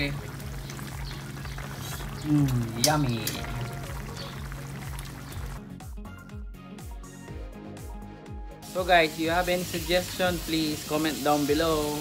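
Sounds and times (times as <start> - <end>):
sauce bubbling in a pan: 0.0 - 5.7.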